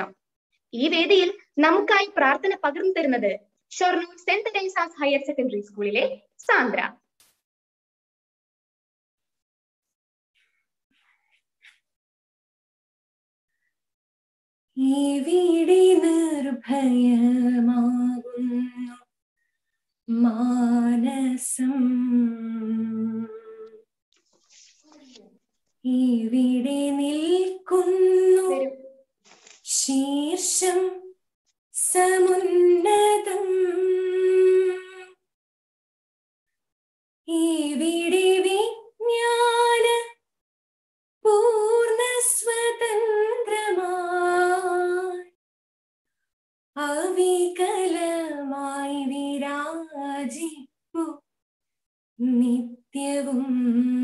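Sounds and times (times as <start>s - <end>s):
woman singing unaccompanied: 14.8s - 19.1s, 20.1s - 23.8s, 25.8s - 28.8s, 29.7s - 31.2s, 31.8s - 35.2s, 37.3s - 40.2s, 41.2s - 45.4s, 46.8s - 51.3s, 52.2s - 54.0s.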